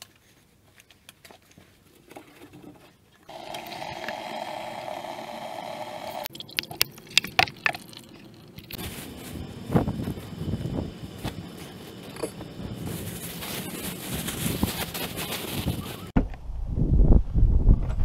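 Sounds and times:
outdoor rustling: 0:00.0 - 0:04.9, 0:06.2 - 0:16.4
water running into plastic bucket: 0:03.3 - 0:08.8.

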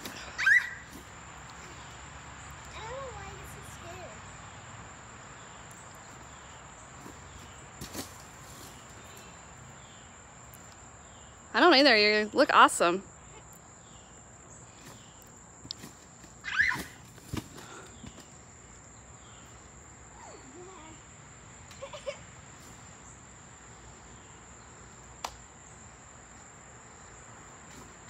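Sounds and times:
insects chirring: 0:00.0 - 0:28.0.

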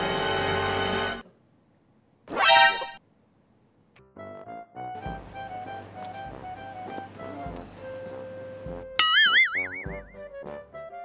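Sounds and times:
upbeat background music: 0:04.2 - 0:11.0
comic boing sound effect: 0:09.0 - 0:10.2.

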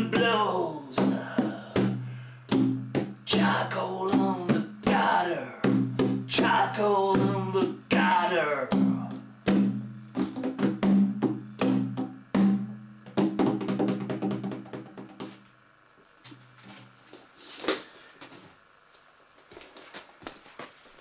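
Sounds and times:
frame drum struck by hand: 0:01.0 - 0:15.4.

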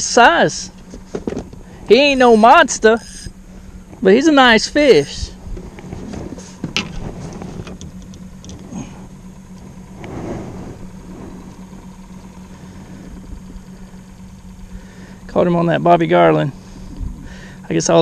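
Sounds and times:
boat motor humming: 0:00.0 - 0:18.0.

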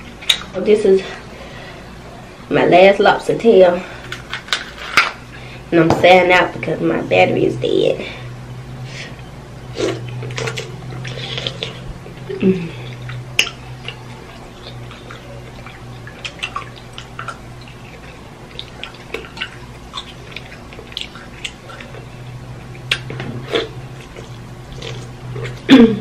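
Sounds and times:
low hum: 0:03.3 - 0:26.0
wet chewing and lip-smacking: 0:09.7 - 0:25.7.

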